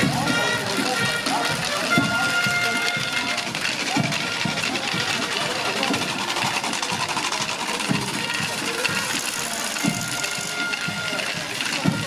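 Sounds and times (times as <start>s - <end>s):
small bells jingling: 0.0s - 12.0s
voices: 0.0s - 12.0s.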